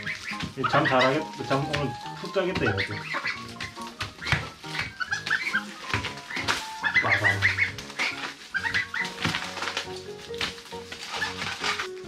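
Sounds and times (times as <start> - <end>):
background music held notes: 0.0 - 12.0
goslings peeping: 0.0 - 12.0.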